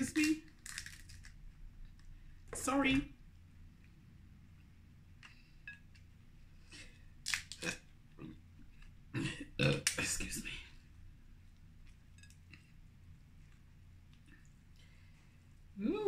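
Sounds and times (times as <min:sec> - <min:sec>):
person burping: 0:09.1 - 0:10.0.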